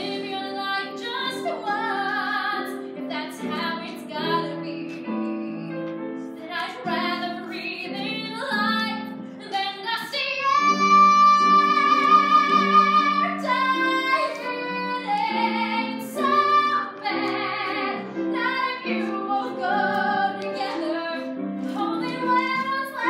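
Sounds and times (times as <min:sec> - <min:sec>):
grand piano accompaniment: 0:00.0 - 0:23.0
woman singing: 0:00.0 - 0:23.0.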